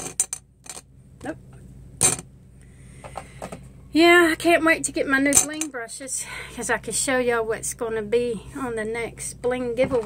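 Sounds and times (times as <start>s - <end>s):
makeup brushes clinking: 5.3s - 5.7s.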